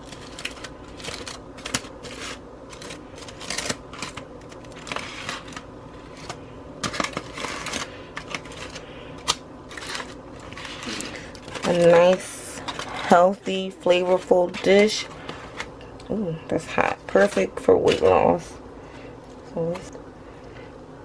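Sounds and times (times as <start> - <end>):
foil crinkling: 0.0 - 15.7.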